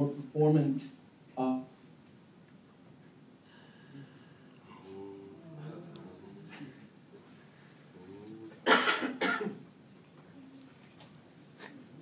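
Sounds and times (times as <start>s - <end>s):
person coughing: 8.6s - 9.6s.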